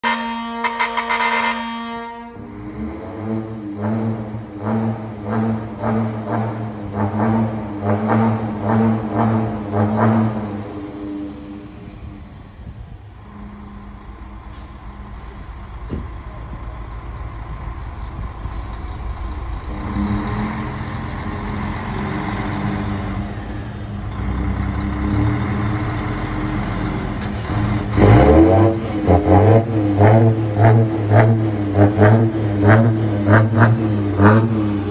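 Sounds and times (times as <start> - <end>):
diesel truck engine revving: 0.0 - 34.9.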